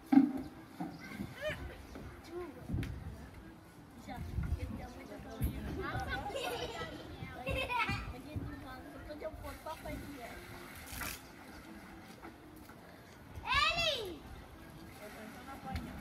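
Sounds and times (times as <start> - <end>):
women and children talking: 0.7 - 10.6.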